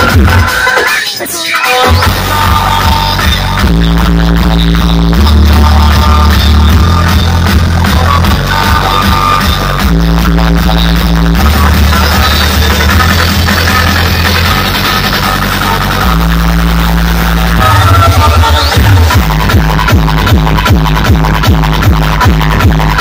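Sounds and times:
loud electronic dance music: 0.0 - 23.0.

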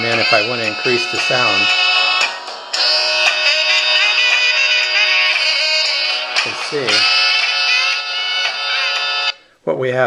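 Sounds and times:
song from small phone speaker: 0.0 - 9.4.

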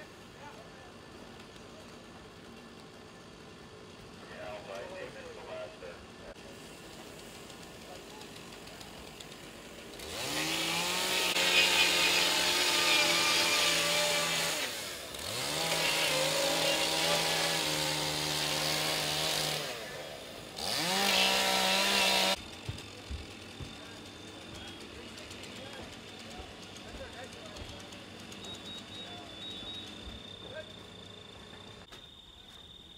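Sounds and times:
chainsaw running at full speed: 3.0 - 31.4.

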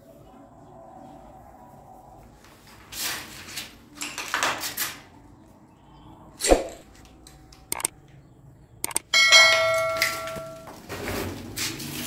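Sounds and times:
bell-like metallic ring: 9.1 - 10.7.

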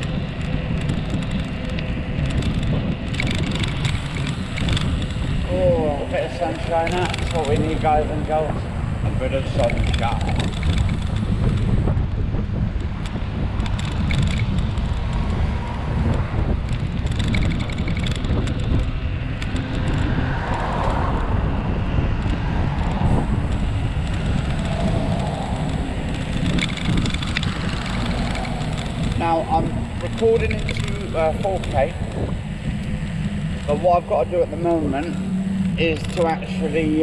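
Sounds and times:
bike tyre rumbling on tarmac: 0.0 - 37.0
cars passing: 0.0 - 37.0
wind buffeting microphone: 0.0 - 37.0.

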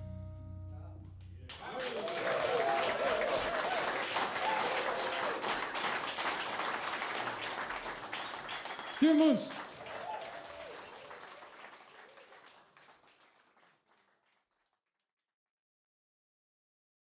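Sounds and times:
held jazz note: 0.0 - 1.5
audience clapping: 1.5 - 14.8.

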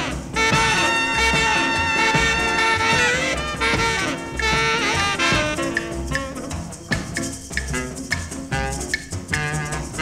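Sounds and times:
horn section riffs: 0.0 - 6.7, 7.8 - 10.0
steady drum beat: 0.0 - 10.0.

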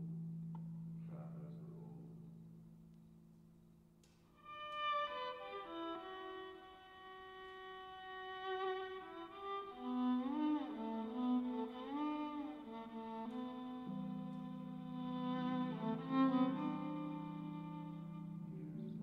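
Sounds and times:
violin long bowed notes: 4.4 - 19.0.

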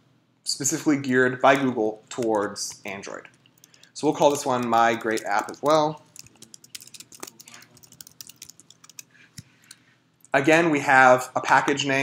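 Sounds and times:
keyboard typing clicks: 1.5 - 9.8.

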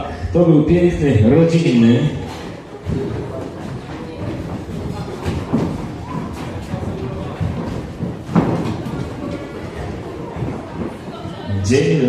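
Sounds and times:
crowd voices: 0.0 - 12.0
footsteps running on wooden floor: 2.2 - 11.5
thuds and knocks: 2.8 - 11.0.

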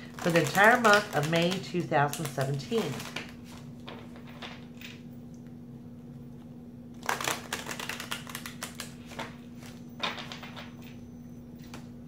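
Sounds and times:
cards being shuffled by hand: 0.0 - 4.6, 7.0 - 10.5.

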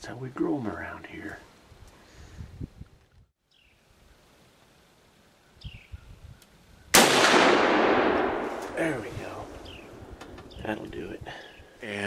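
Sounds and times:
loud gunshot: 7.0 - 8.9.

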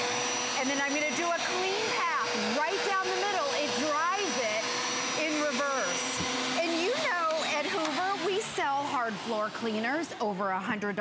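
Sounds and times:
floor cleaner whining: 0.0 - 11.0
person talking: 6.6 - 9.6.

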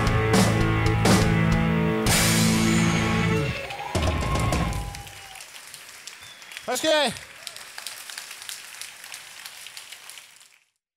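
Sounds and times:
audience applauding: 3.3 - 10.8.

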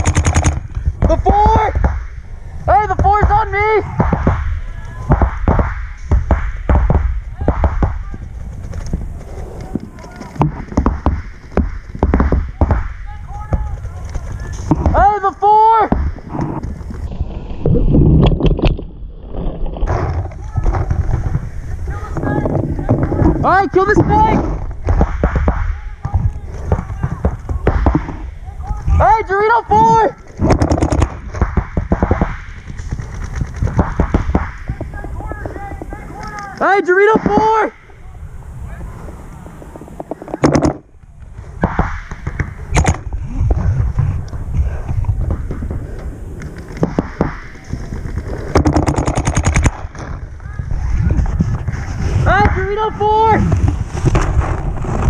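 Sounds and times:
paintball markers firing: 0.0 - 2.1, 9.6 - 15.0, 30.2 - 37.4, 45.1 - 50.2
paintball markers popping: 45.2 - 50.1.

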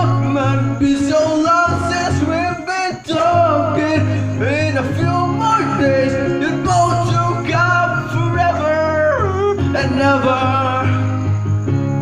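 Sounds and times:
man singing karaoke: 0.0 - 11.5
backing track music: 0.0 - 12.0.

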